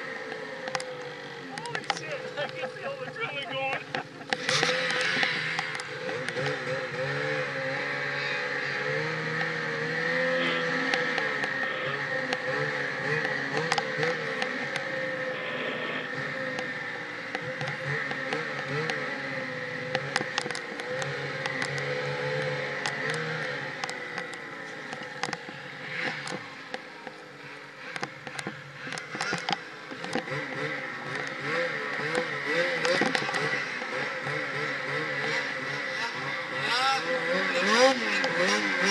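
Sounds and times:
snowmobile engine running hard: 0.0s - 38.9s
steady whine: 10.3s - 34.2s
sharp ticks: 16.5s - 19.0s, 27.9s - 30.5s.

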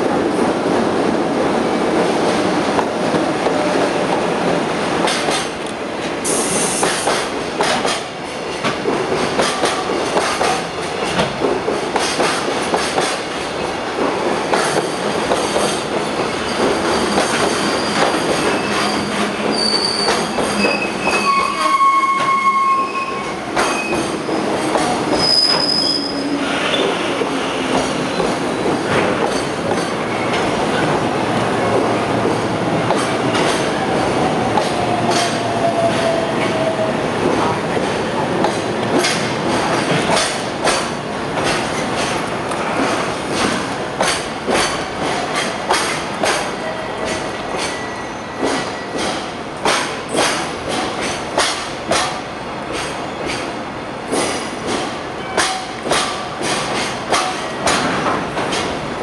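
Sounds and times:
freight train rumbling: 0.0s - 59.0s
high-pitched brake squeals: 17.6s - 24.1s, 25.2s - 26.9s.

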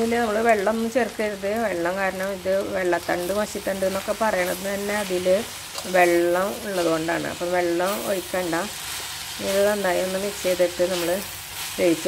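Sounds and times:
light sizzle: 0.0s - 12.0s.

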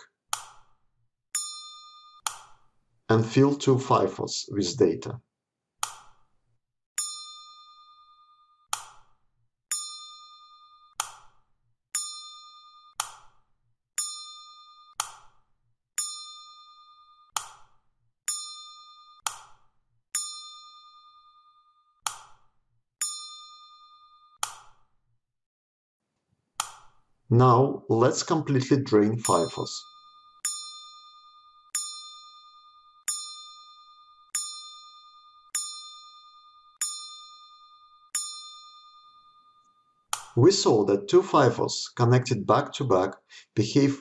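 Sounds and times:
bell-like ding: 1.4s - 2.3s, 7.0s - 8.7s, 9.7s - 11.0s, 12.0s - 13.0s, 14.0s - 15.0s, 16.0s - 17.4s, 18.3s - 19.3s, 20.2s - 22.0s, 23.0s - 24.4s, 29.2s - 40.4s.

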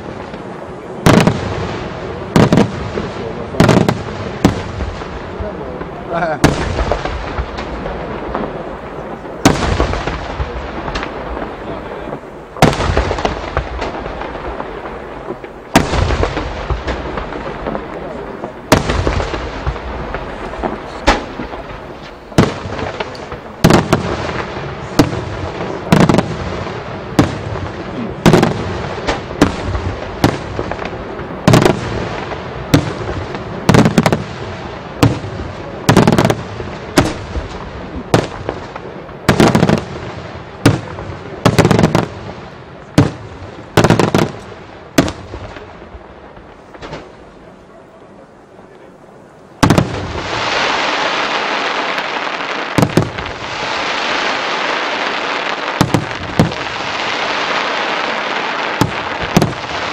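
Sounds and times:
fireworks bursting with bangs: 0.0s - 59.9s
fireworks crackle and echo: 0.0s - 59.9s.

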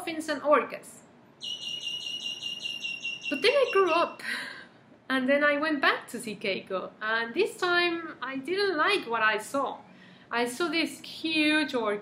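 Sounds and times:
insect high-pitched pulsing trill: 1.4s - 4.2s.

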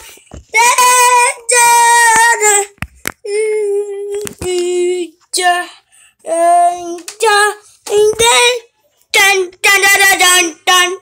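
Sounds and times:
child singing high held notes: 0.6s - 2.7s.

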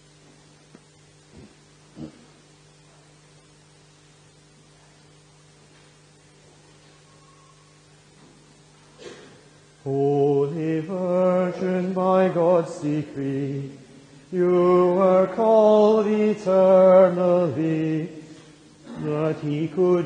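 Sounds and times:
hymn singing: 9.8s - 20.0s.

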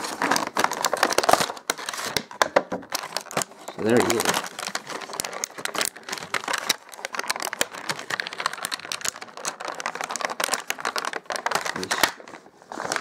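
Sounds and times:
plastic packaging crinkling: 0.0s - 13.0s.

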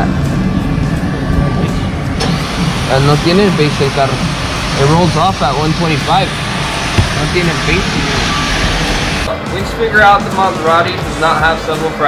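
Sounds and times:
steady rushing noise: 0.1s - 9.4s
voices talking: 2.9s - 9.5s.

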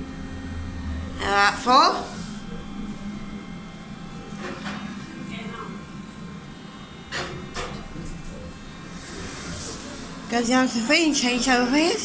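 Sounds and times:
lift low hum: 0.0s - 7.0s.

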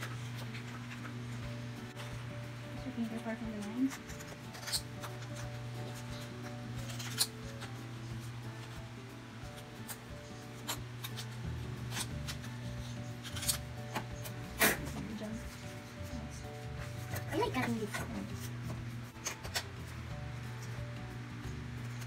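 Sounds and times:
soft background music: 0.0s - 22.0s
scissors cutting paper: 3.4s - 7.8s, 9.5s - 19.7s.

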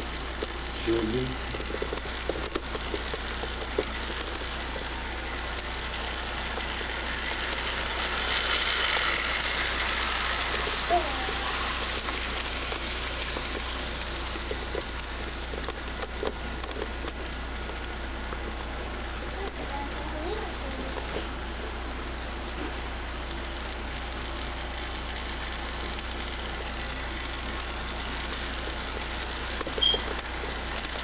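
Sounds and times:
toy train whirring on track: 0.0s - 22.3s, 23.0s - 31.0s.

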